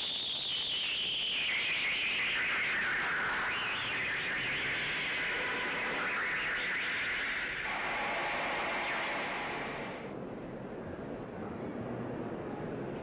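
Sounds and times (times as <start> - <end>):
steady hissing noise: 0.0 - 11.0.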